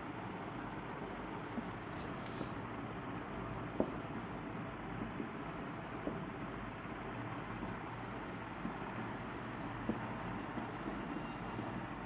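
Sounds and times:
marker pen writing on whiteboard: 0:00.0 - 0:12.0.

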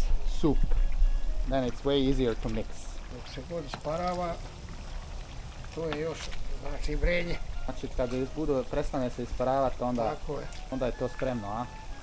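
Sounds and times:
people talking: 0:01.5 - 0:04.4, 0:05.7 - 0:11.7
fat bubbling in a kettle: 0:01.7 - 0:06.9.

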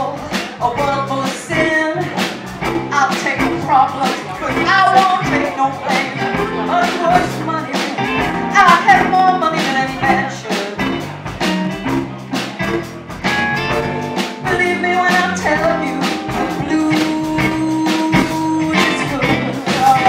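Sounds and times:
drum kit beat: 0:00.0 - 0:20.0
electric guitar: 0:00.0 - 0:20.0.

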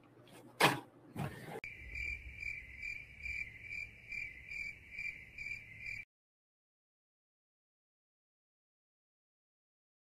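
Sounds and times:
crickets chirping: 0:01.6 - 0:06.1.

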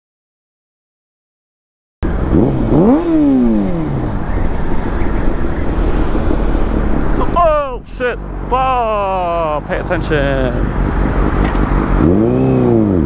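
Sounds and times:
motorcycle engine revving: 0:02.0 - 0:07.4, 0:10.2 - 0:13.0
wind and road noise: 0:02.0 - 0:13.0.

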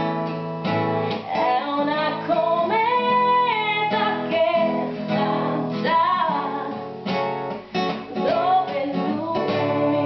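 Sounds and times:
strummed nylon-string guitar: 0:00.0 - 0:10.0
woman singing: 0:01.1 - 0:07.0, 0:07.9 - 0:10.0.

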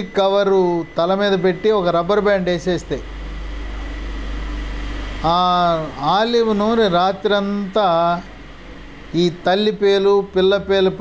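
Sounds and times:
low room hum with hiss: 0:00.0 - 0:11.0.

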